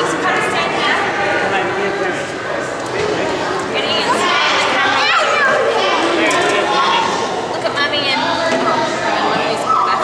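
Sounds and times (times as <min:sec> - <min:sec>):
crowd chatter: 0:00.0 - 0:10.0
children's voices: 0:02.8 - 0:10.0.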